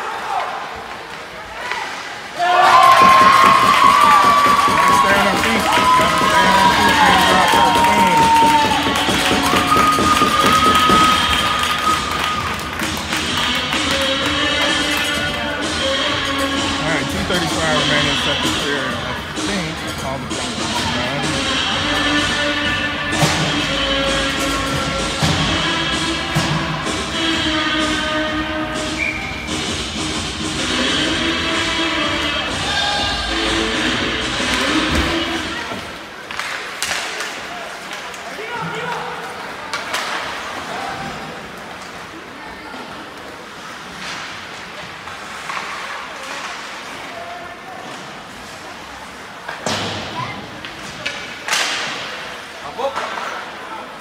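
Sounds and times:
music over pa system: 3.0 - 35.6
sticks and puck hitting ice: 51.0 - 52.2.

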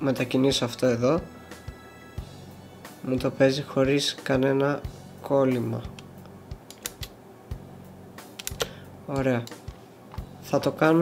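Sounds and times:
computer keyboard and mouse clicks: 6.7 - 7.1, 8.4 - 8.7.

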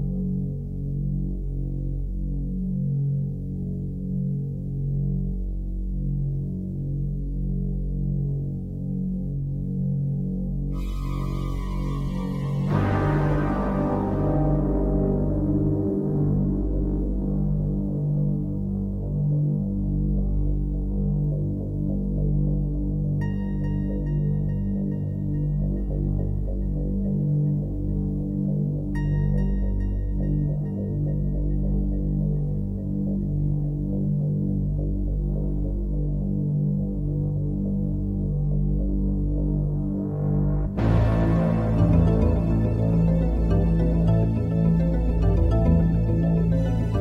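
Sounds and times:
throbbing bass drone music: 0.0 - 47.0.

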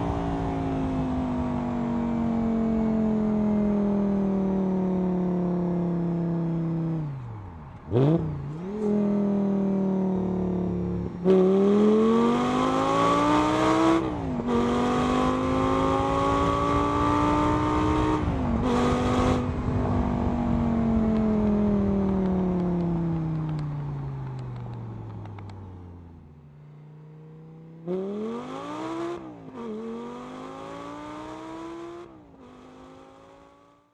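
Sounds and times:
car engine accelerating: 0.0 - 33.9.

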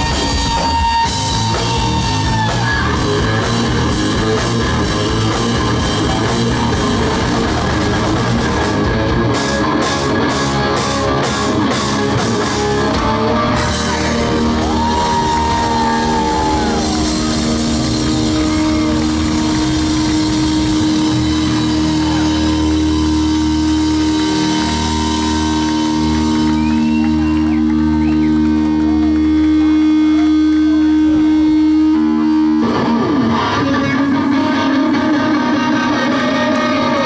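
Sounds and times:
drums and cymbals: 0.0 - 27.6
amplified electric guitars chord: 0.0 - 37.0.

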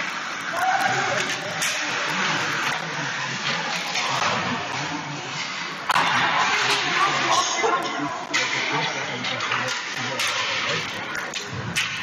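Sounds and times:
sticks hitting puck: 0.0 - 2.7, 3.4 - 7.3, 9.4 - 12.0
skate blades scraping ice: 0.0 - 8.7.

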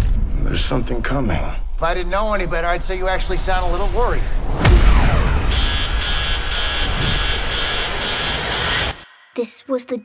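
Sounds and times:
rumbling rush of noise: 0.0 - 9.0
high pulsing beeps: 4.7 - 9.0.

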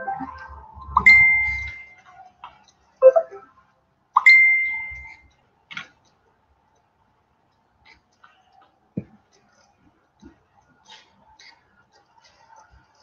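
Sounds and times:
bright dings: 1.0 - 2.0, 4.2 - 5.2.

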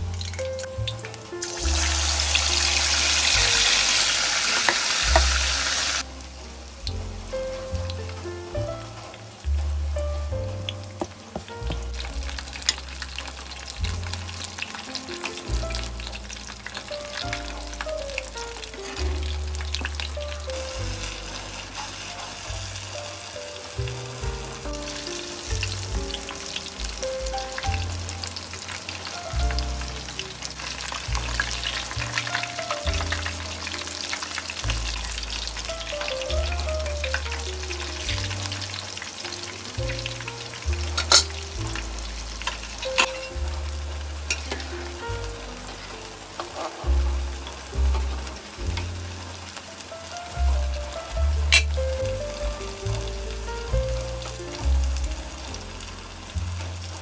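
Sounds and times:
oil sizzling in a pan: 0.0 - 57.0
soft background music: 0.0 - 57.0.

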